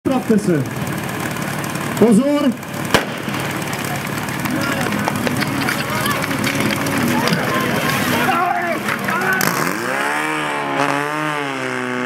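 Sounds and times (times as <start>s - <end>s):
engine idling: 0.0s - 10.6s
person calling: 3.7s - 9.8s.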